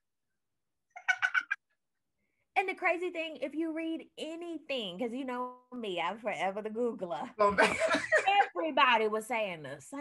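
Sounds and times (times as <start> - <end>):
woman laughing: 1.0 - 1.6, 7.5 - 8.6.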